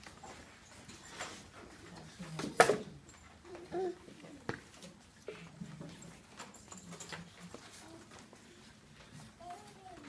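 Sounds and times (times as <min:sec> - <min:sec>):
low murmuring voices: 0:01.6 - 0:10.0.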